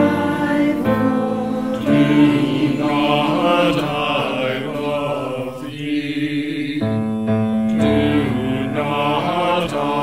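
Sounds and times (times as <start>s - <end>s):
mixed choir singing a hymn: 0.0s - 10.0s.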